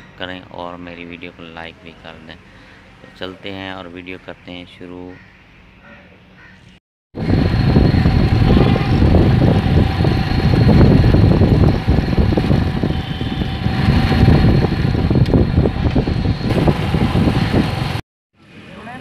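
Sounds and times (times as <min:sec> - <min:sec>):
motorcycle engine running: 0:07.2 - 0:18.0
wind rumble on microphone: 0:07.2 - 0:18.0.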